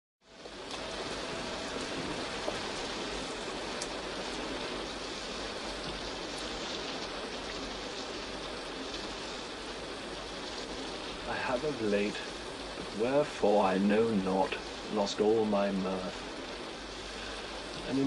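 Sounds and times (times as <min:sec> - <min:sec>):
steady rain falling: 0:00.2 - 0:18.0
raindrop ticks: 0:00.3 - 0:18.0.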